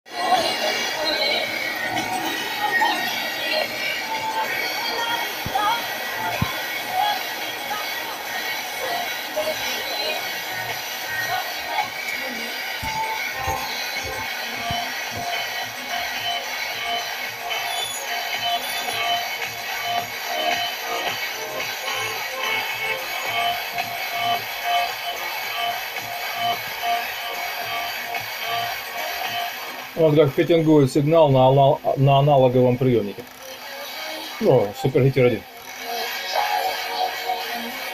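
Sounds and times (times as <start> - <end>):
music on weak radio signal: 0.1 - 37.9.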